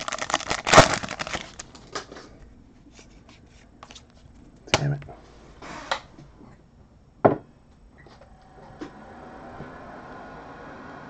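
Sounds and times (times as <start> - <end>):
cards sliding rustle: 2.9 - 4.3.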